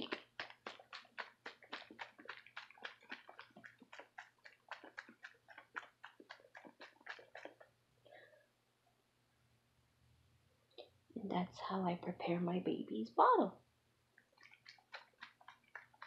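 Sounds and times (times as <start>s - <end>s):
milk sloshing in shaken bottle: 0.0s - 7.7s, 14.3s - 16.0s.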